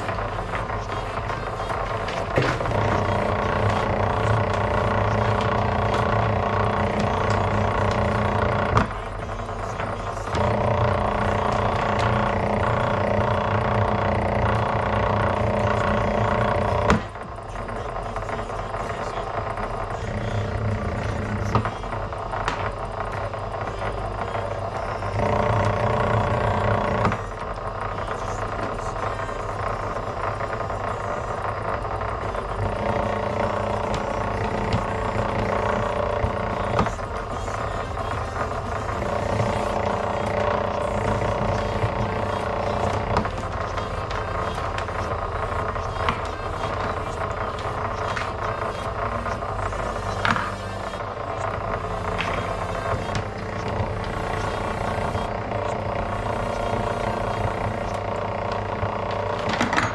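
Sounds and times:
wire stripping machine running: 0:00.0 - 0:59.9.

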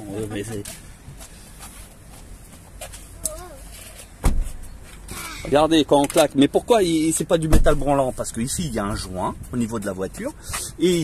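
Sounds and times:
clothing and seat rustling: 0:00.4 - 0:05.6.

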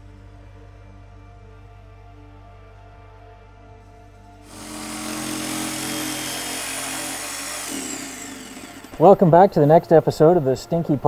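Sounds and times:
jigsaw cutting through board: 0:04.4 - 0:09.1.

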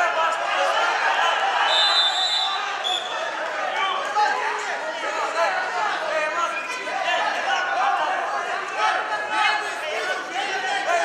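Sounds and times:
people shouting in a hall: 0:00.0 - 0:11.0.

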